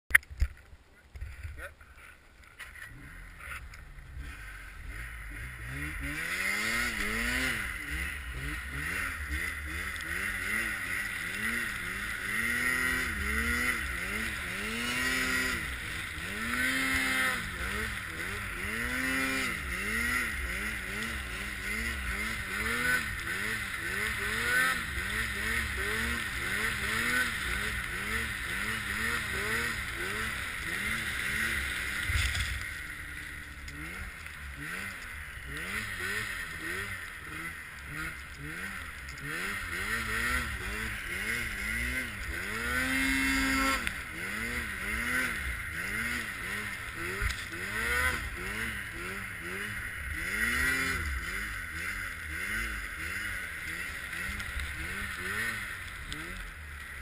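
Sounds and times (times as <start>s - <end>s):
snowmobile engine revving: 1.3s - 57.0s.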